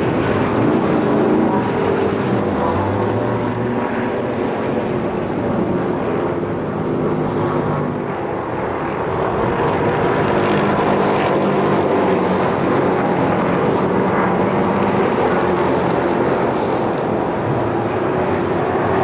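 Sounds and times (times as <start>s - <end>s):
race car engine at speed: 0.0s - 19.0s.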